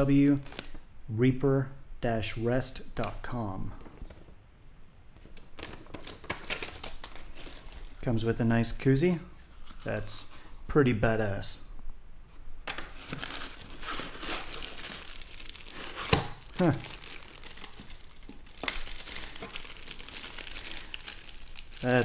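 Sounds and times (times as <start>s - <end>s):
plastic packaging crinkling: 0.0s - 0.8s, 5.3s - 8.2s, 12.7s - 22.0s.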